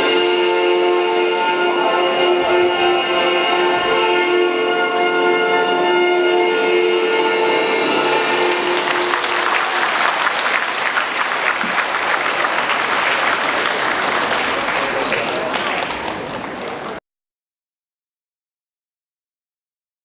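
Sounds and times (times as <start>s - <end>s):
music of long held tones: 0.0s - 11.2s
audience applause: 7.8s - 17.0s.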